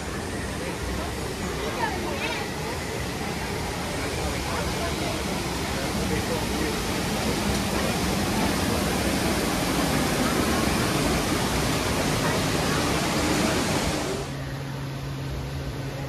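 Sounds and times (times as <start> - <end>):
waterfall rushing: 5.1 - 14.3.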